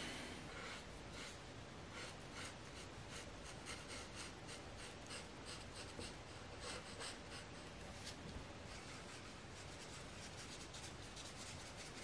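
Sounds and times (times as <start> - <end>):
marker rubbing across paper: 0.5 - 7.7, 8.7 - 12.0.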